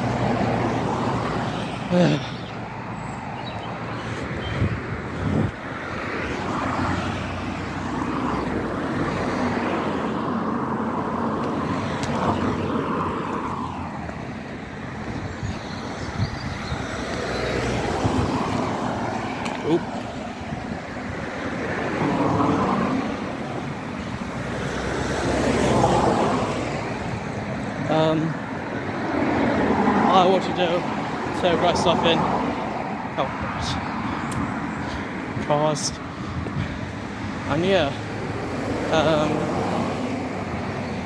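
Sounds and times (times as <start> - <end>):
outdoor rushing noise: 0.0 - 40.8.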